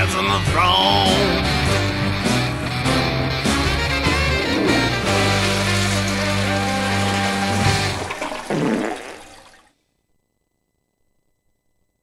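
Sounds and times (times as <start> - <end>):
toilet flush: 4.9 - 9.7.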